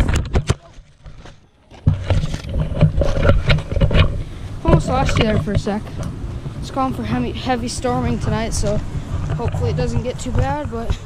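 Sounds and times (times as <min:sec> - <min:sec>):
wind and handling rumble: 0:00.0 - 0:11.0.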